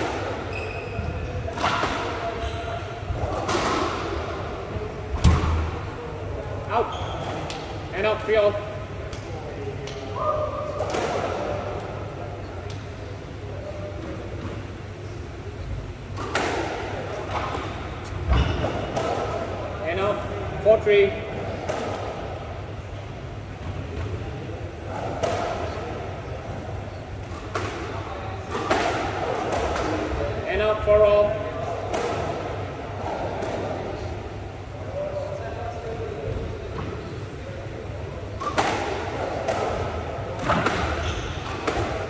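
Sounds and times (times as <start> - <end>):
squash ball strikes echoing: 1.4 - 6.0, 16.1 - 19.6, 21.4 - 22.3, 27.2 - 30.4, 31.4 - 33.8, 38.4 - 42.0.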